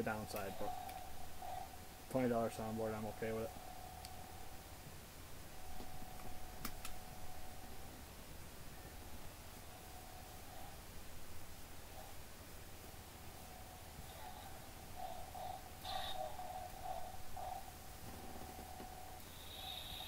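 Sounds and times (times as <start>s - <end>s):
toy lightsaber hum: 14.1s - 17.7s, 19.2s - 20.0s.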